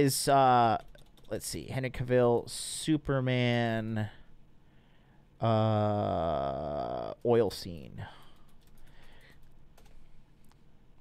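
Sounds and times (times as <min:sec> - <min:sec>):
computer keyboard typing: 0:00.6 - 0:01.6, 0:08.1 - 0:10.0.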